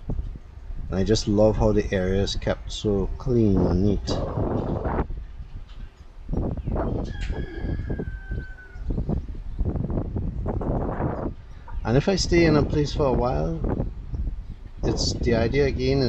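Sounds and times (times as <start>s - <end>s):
wind rumbling on microphone: 0.0s - 16.0s
distant rooster crowing: 6.7s - 9.2s.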